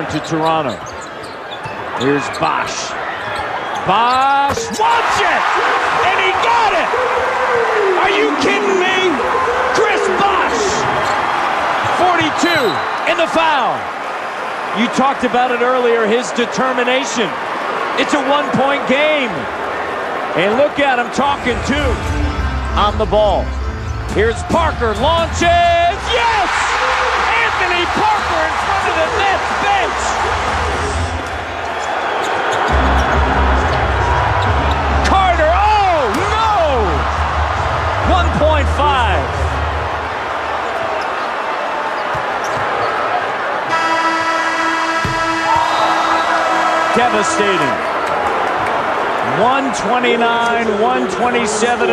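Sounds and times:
sneakers squeaking on hardwood: 0:00.0 - 0:02.4, 0:42.0 - 0:43.1, 0:45.0 - 0:45.9
crowd cheering loudly: 0:00.0 - 0:51.9.

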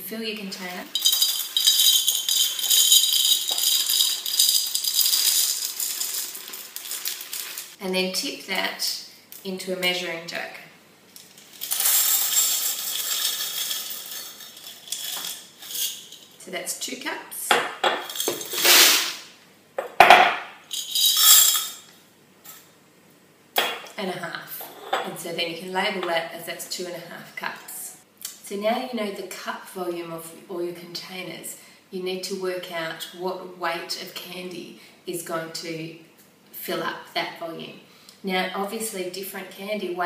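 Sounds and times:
dry pasta rattling into glass: 0:00.9 - 0:07.8, 0:11.6 - 0:16.2.

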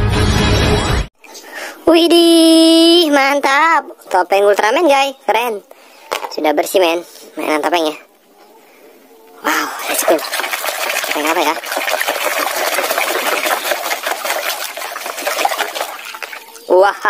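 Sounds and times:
water splashing in plastic basin: 0:09.6 - 0:16.7.

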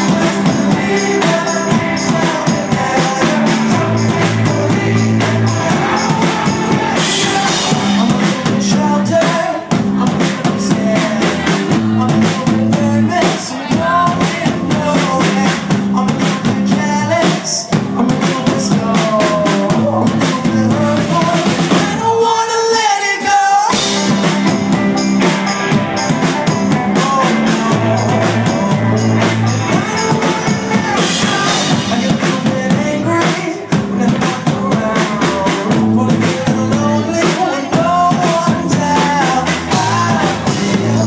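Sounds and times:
electric guitars: 0:00.0 - 0:16.8, 0:23.7 - 0:41.0
drum kit: 0:00.0 - 0:22.3, 0:23.6 - 0:41.0
lead vocals: 0:00.0 - 0:41.0
rock band playing live: 0:00.0 - 0:41.0.

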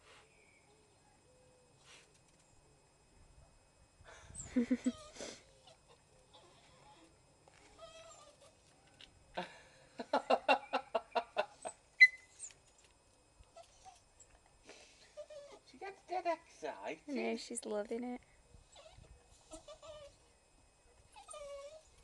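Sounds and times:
dog sharp squeak: 0:12.0 - 0:12.6, 0:18.7 - 0:20.2.

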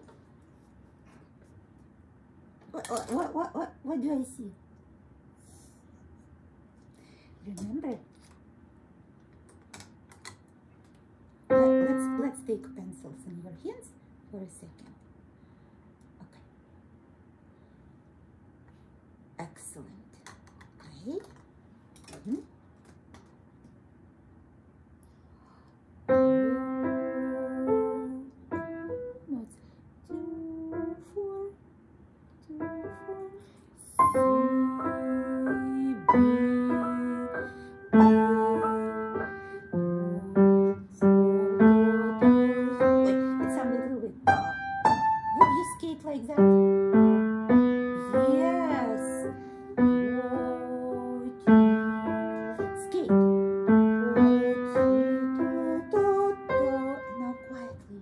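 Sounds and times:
piano melody in single notes: 0:11.5 - 0:13.2, 0:26.1 - 0:29.3, 0:34.0 - 0:45.8, 0:46.4 - 0:57.6.

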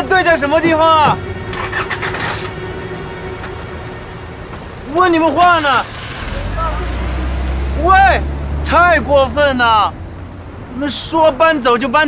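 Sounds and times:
car engine burst: 0:05.3 - 0:11.4.

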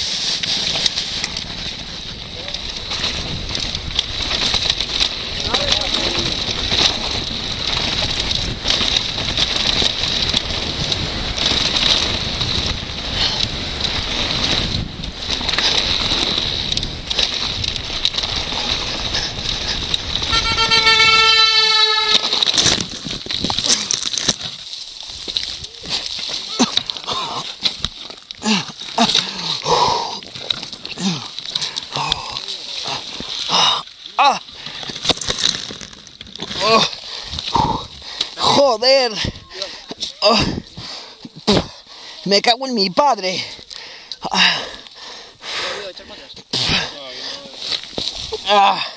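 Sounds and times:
bike rattling over stones: 0:00.0 - 0:48.9
bike crashing with knocks: 0:02.2 - 0:29.6, 0:30.2 - 0:37.0
horn sounding: 0:20.2 - 0:22.6.

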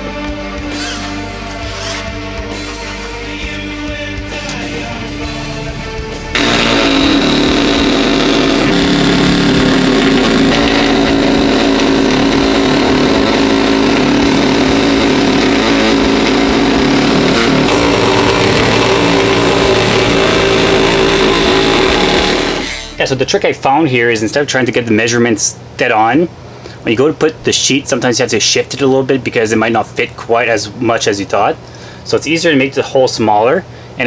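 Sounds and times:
background music: 0:00.0 - 0:23.4
oscillating multi-tool cutting drywall: 0:00.6 - 0:03.2, 0:06.3 - 0:23.0.

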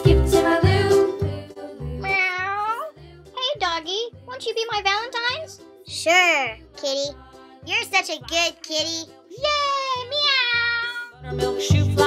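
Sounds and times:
children's music with steady beat: 0:00.0 - 0:12.0
person making meow-like calls: 0:02.0 - 0:02.9.

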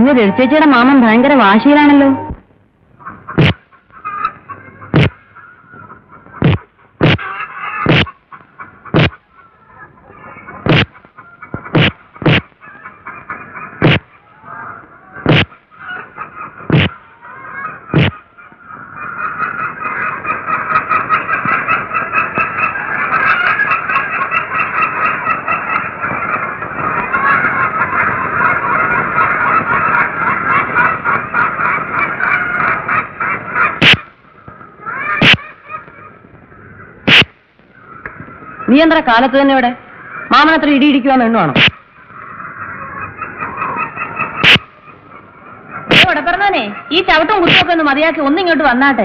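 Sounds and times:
ducks quacking: 0:00.0 - 0:02.4, 0:03.0 - 0:49.0
stick beating a sack: 0:37.1 - 0:37.3.

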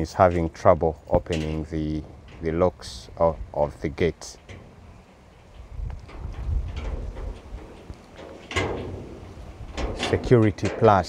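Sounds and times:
metal gate rattling: 0:00.0 - 0:11.0.

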